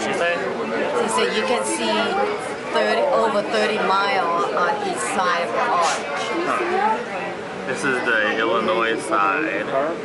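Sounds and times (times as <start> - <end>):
people chattering: 0.0 - 10.0
woman talking: 1.0 - 5.8.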